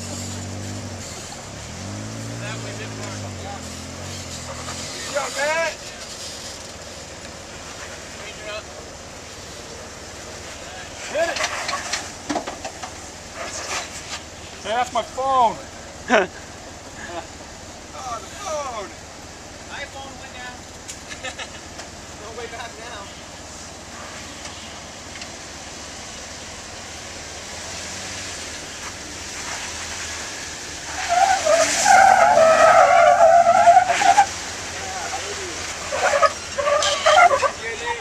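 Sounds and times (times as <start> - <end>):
car engine: 0.0 - 38.0
tires squealing on rock: 0.0 - 38.0.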